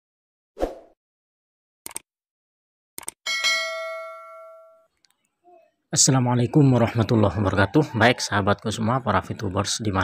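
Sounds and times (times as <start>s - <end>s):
short clicks: 1.8s - 2.1s, 3.0s - 3.2s
notification bell ding: 3.3s - 4.9s.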